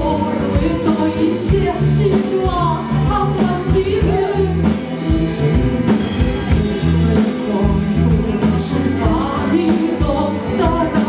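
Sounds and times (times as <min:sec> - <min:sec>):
rock band with strings and drums: 0:00.0 - 0:11.0
woman singing: 0:00.0 - 0:11.0.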